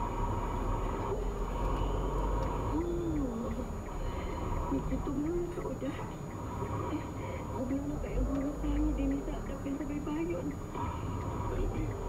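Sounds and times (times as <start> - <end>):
vehicle engine rumble: 0.0 - 12.0.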